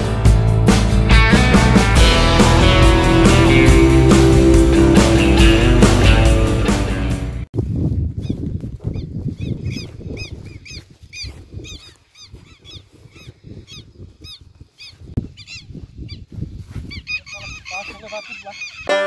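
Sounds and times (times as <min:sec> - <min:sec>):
birds calling: 0:08.2 - 0:19.0.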